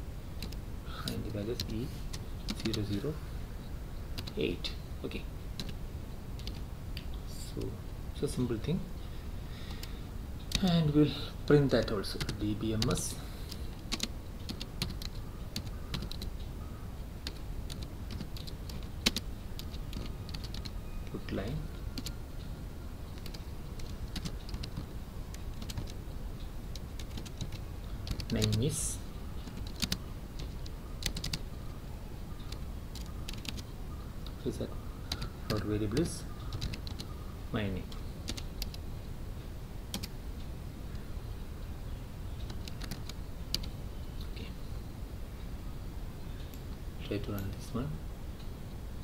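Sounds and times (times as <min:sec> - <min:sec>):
computer keyboard typing: 0:00.4 - 0:03.0, 0:04.2 - 0:04.4, 0:05.6 - 0:05.8, 0:06.4 - 0:06.7, 0:10.5 - 0:10.8, 0:12.1 - 0:16.3, 0:17.2 - 0:20.8, 0:22.0 - 0:22.2, 0:23.1 - 0:26.0, 0:26.7 - 0:31.4, 0:32.4 - 0:34.5, 0:35.1 - 0:37.1, 0:37.9 - 0:38.8, 0:39.9 - 0:40.2, 0:42.4 - 0:43.8
keyboard key clicks: 0:04.2 - 0:04.4, 0:29.4 - 0:31.4, 0:36.5 - 0:37.1, 0:39.9 - 0:40.1, 0:42.4 - 0:43.7.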